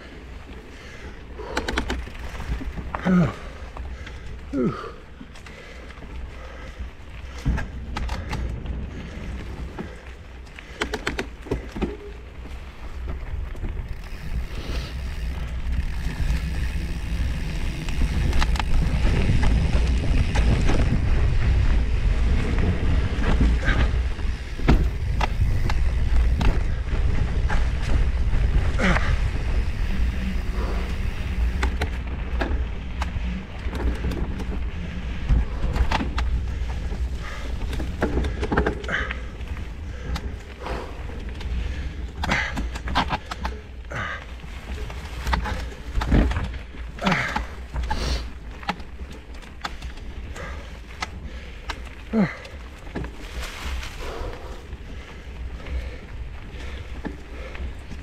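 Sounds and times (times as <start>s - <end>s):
dry leaves and twigs crackling: 0.0s - 58.0s
wind rumble on microphone: 0.0s - 58.0s.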